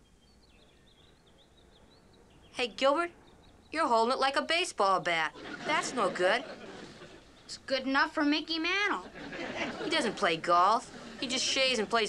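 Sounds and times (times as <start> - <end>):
faint high bird chirps: 0.0 - 5.1.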